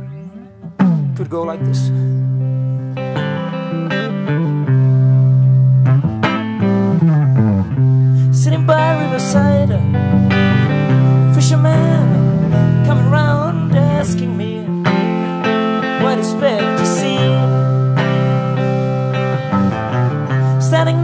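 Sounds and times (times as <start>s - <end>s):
acoustic guitar: 0.0s - 21.0s
bass guitar: 0.0s - 21.0s
electric guitar: 0.0s - 21.0s
drums: 0.6s - 2.3s.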